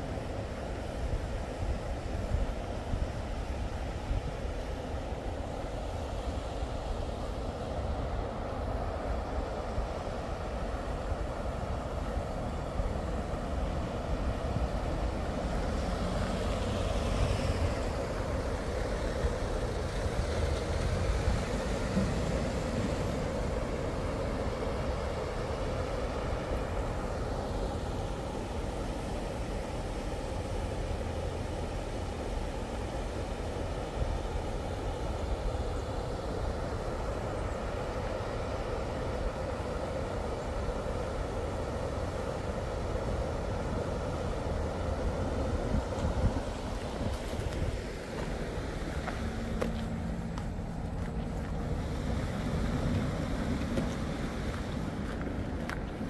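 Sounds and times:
road traffic noise: 0.0s - 56.0s
vehicle passing: 15.7s - 18.9s, 46.9s - 56.0s.

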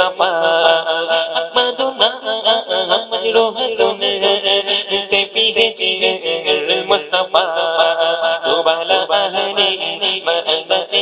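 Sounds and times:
man singing devotional song: 0.0s - 11.0s.

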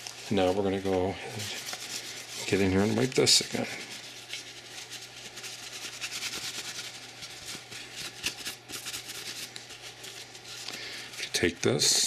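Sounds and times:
paper towel rubbing on metal: 0.0s - 12.0s.

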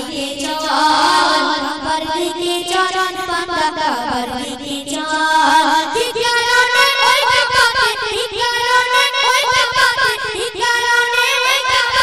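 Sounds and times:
boys singing devotional song: 0.0s - 12.0s.

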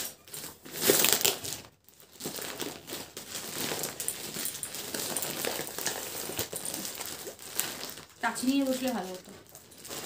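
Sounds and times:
paper wrapping crinkling: 0.0s - 10.0s.

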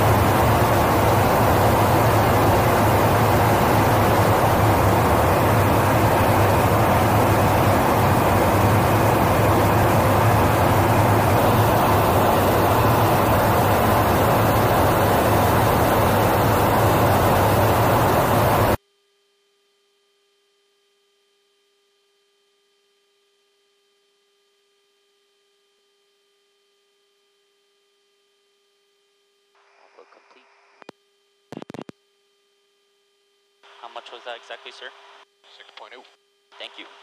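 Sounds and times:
engine and airflow rush in aircraft: 0.0s - 18.8s
faint hum: 0.0s - 37.0s.

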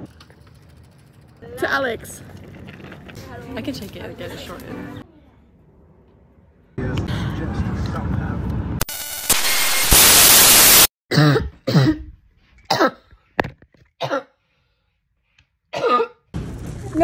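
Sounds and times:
loud burst of noise: 8.8s - 10.9s
person coughing: 11.1s - 12.1s, 12.7s - 13.1s, 14.0s - 14.4s, 15.7s - 16.2s.

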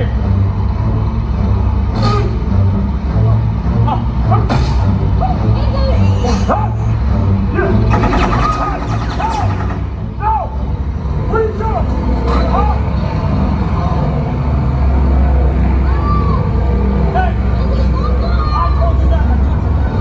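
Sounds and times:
music: 0.0s - 20.0s.

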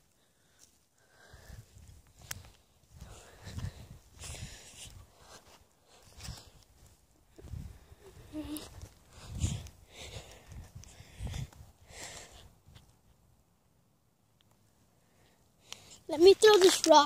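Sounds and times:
footsteps on dry mud: 0.0s - 12.2s, 15.8s - 17.0s.

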